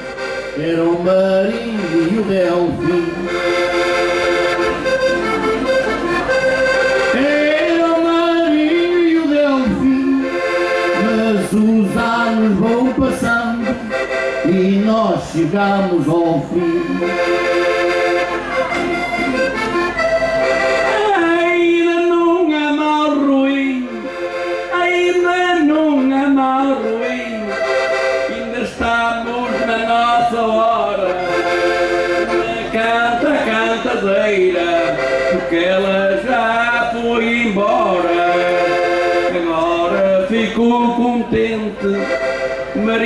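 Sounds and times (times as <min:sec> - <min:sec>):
accordion melody: 0:00.0 - 0:43.0.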